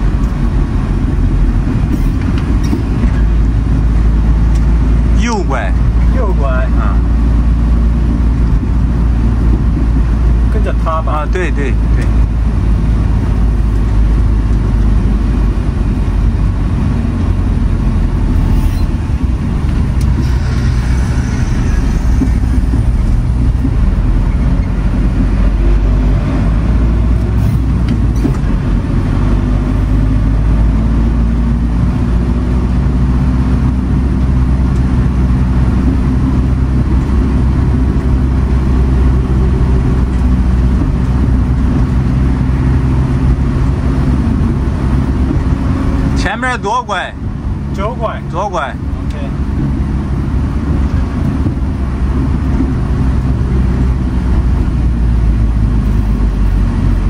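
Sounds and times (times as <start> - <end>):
diesel engine droning: 0.0 - 57.0
tyre and road noise: 0.0 - 57.0.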